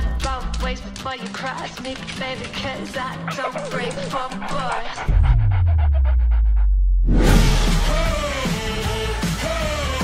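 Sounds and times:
deep bass note sliding down: 5.1s - 8.0s.

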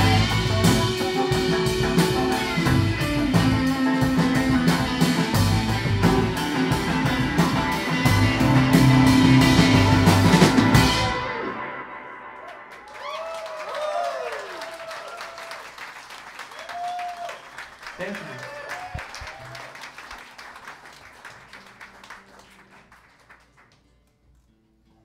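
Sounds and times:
audience whooping: 12.2s - 22.7s
audience applauding: 12.4s - 23.8s.

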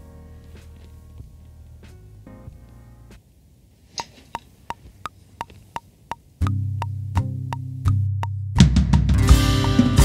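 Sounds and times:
metronome clicks: 4.0s - 8.4s, 9.6s - 9.9s.

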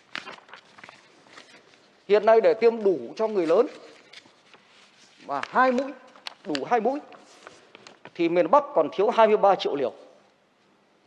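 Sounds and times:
paper sheets rustling: 0.0s - 8.3s.

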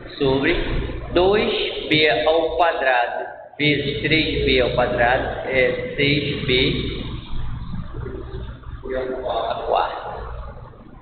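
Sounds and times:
low hum: 0.0s - 11.0s
faint indistinct sounds: 3.2s - 11.0s.

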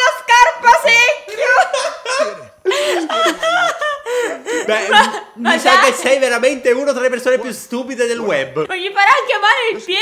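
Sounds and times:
woman and man laughing: 1.4s - 5.4s.

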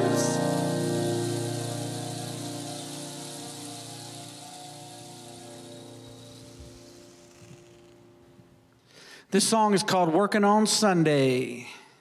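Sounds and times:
chord ringing out: 0.0s - 7.1s
rainstick hiss: 0.0s - 8.6s.

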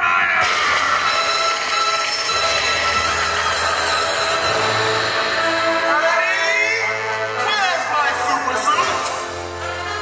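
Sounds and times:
bass line: 0.4s - 7.5s
soundtrack music with held high note: 0.4s - 10.0s.

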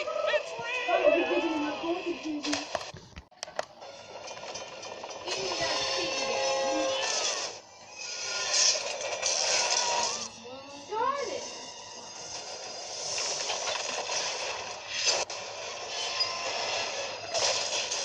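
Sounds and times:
action movie soundtrack din: 0.0s - 18.0s.

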